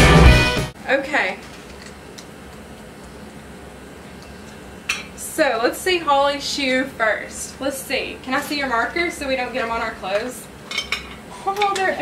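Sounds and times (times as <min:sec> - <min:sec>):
woman speaking: 0:00.8 - 0:01.5, 0:05.2 - 0:10.5, 0:11.4 - 0:12.0.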